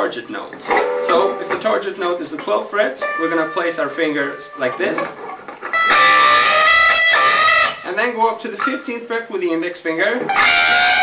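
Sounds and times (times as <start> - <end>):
overdriven electric guitar bends: 0.6 - 7.8, 10.3 - 11.0.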